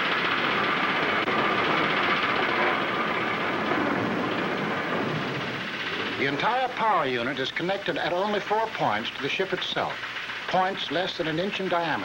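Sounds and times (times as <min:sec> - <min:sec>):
piston aircraft engines droning: 0:00.0 - 0:12.0.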